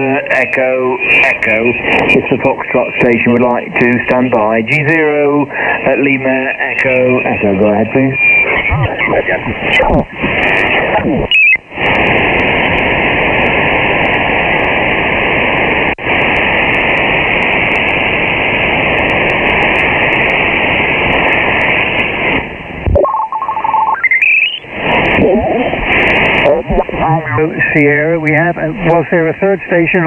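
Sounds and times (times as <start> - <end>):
radio band noise rushing: 0.0 - 30.0
heterodyne whistle and chirp: 8.2 - 8.8, 23.9 - 24.7.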